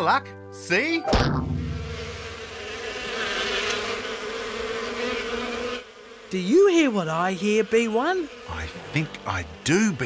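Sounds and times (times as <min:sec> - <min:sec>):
bees buzzing: 0:01.3 - 0:10.0.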